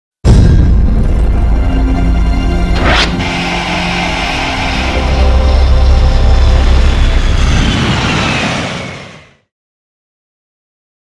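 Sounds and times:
deep bass rumble: 0.3 - 8.1
falling sweep: 2.6 - 9.3.

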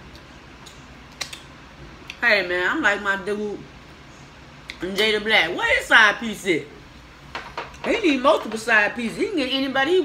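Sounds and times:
steady low hum: 0.0 - 10.0
sharp clicks from eating: 0.1 - 2.2.

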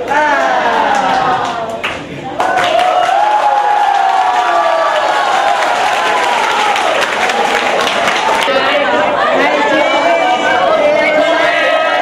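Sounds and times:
boys shouting together: 8.5 - 12.0.

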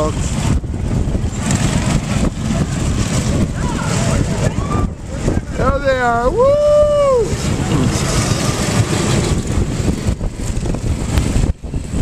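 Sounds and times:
go-kart engines passing: 0.0 - 12.0
wind rumbling on microphone: 0.0 - 12.0.

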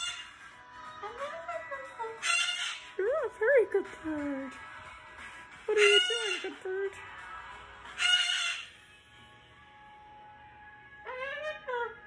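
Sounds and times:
cockatoo screeching: 0.0 - 0.4, 1.0 - 2.9, 5.8 - 6.5, 8.0 - 8.7, 11.0 - 12.0.

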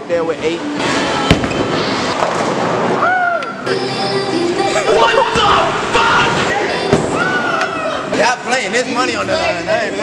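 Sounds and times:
echoing bowling alley din: 0.6 - 9.8
bowling ball rolling: 1.2 - 3.0.

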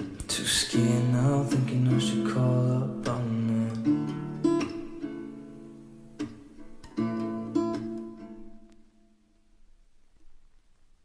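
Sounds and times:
acoustic guitar strumming chords: 0.0 - 9.4.

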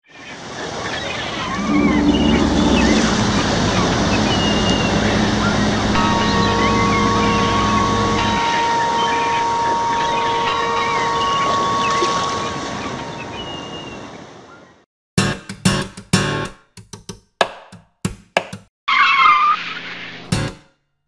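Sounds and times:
wind and sea noise: 0.0 - 14.8
gull-like cries: 1.0 - 14.0, 18.9 - 19.7
low ship's horn: 1.5 - 13.0
higher two-note tone: 1.6 - 13.6.

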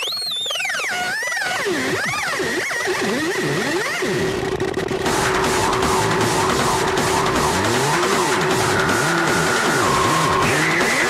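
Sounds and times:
hard techno music: 0.6 - 11.0.

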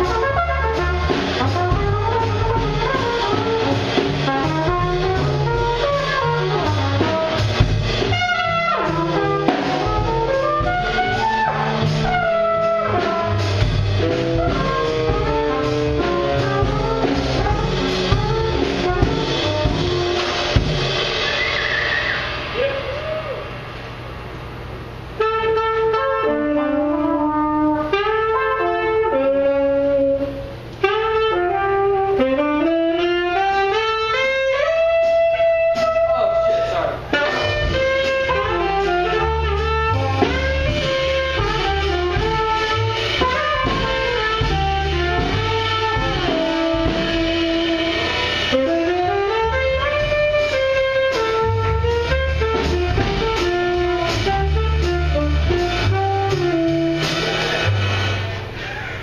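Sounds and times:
upright double bass: 0.0 - 21.6, 24.6 - 58.9
saxophone: 0.0 - 23.6, 25.2 - 59.0
trumpet: 0.0 - 23.6, 25.1 - 58.7
drum kit: 0.0 - 59.0.

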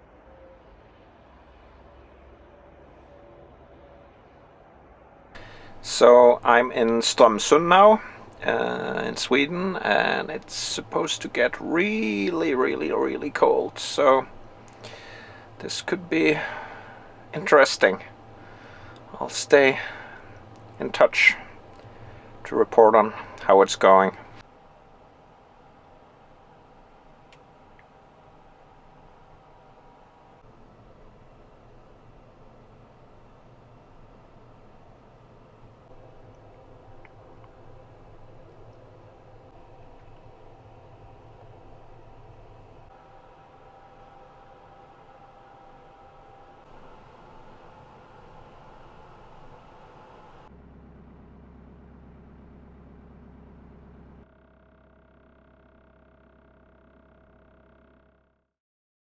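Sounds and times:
faint steady hum: 0.0 - 58.4.

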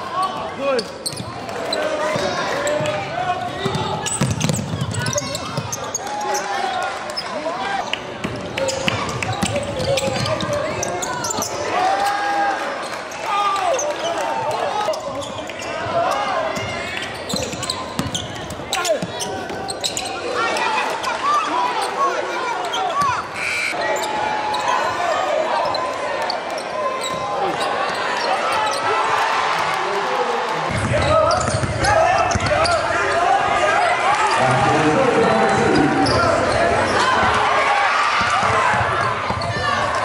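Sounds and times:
voices talking and calling out: 0.0 - 40.0
basketball bouncing on wood floor: 3.6 - 5.7, 17.3 - 18.2.

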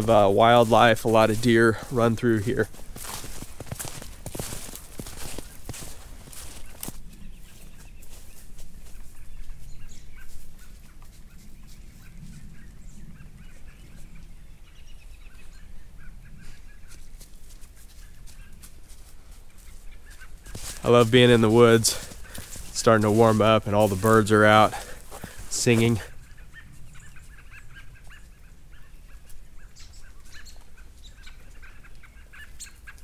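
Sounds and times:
footsteps crunching through snow: 0.0 - 12.4, 16.4 - 26.3
faint bird calls: 18.0 - 23.2, 23.8 - 33.0.

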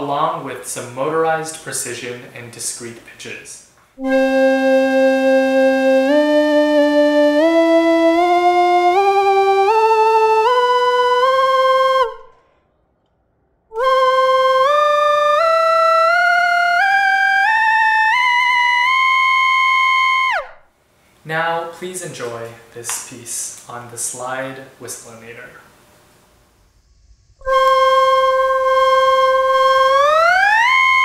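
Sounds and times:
electronic slide whistle: 4.0 - 12.6, 13.7 - 20.7, 26.4 - 31.0.

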